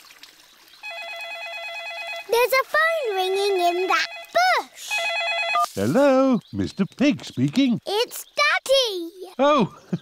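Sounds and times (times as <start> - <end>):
warbling electronic phone ring: 0.8 - 2.4, 3.6 - 5.7.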